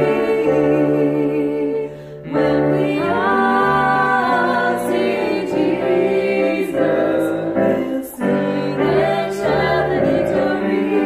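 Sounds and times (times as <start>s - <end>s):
women singing a hymn: 0.0s - 11.0s.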